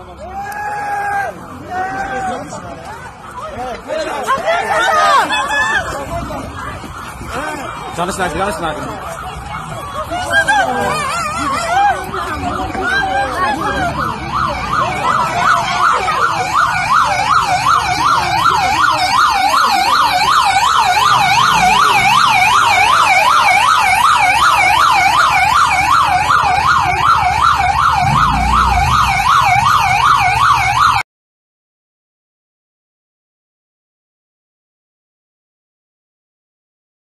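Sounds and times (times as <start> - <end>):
police siren warbling: 4.6 - 31.0.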